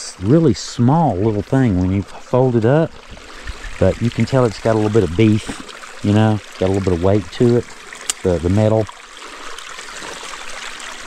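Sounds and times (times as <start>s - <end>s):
stream trickling over rocks: 0.0s - 11.0s.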